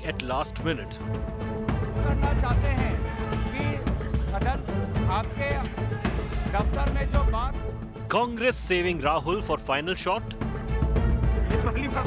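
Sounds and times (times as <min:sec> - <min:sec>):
dramatic news music with drum beat: 0:00.0 - 0:12.0
man speaking: 0:01.9 - 0:10.3.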